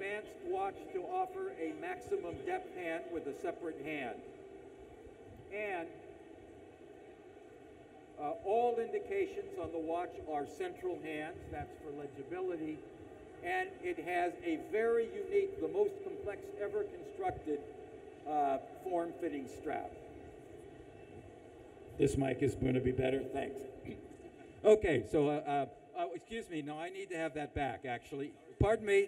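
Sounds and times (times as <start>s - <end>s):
event hall background noise: 0.0s - 29.0s.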